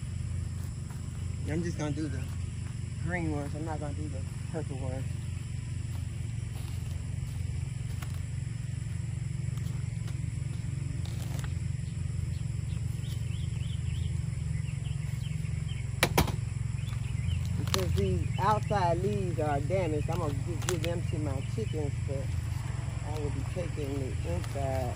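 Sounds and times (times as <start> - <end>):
low engine hum: 0.0 - 24.9
garden loppers cutting stem: 17.3 - 24.9.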